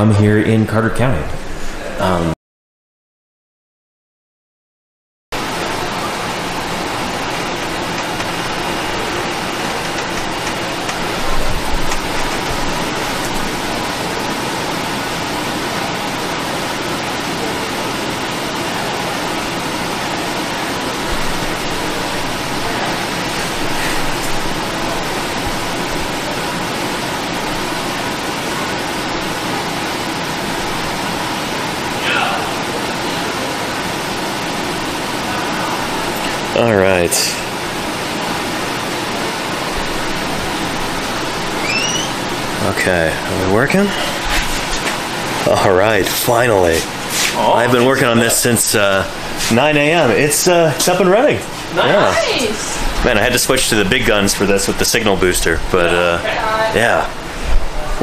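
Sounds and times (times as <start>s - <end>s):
steady rushing hiss: 5.4s - 57.8s
short sweeping squeak: 41.6s - 42.2s.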